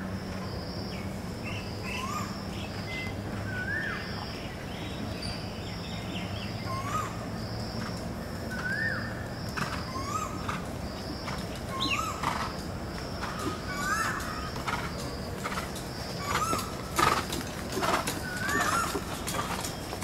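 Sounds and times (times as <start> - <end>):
birds chirping: 0.0 - 20.0
outdoor background noise: 0.0 - 20.0.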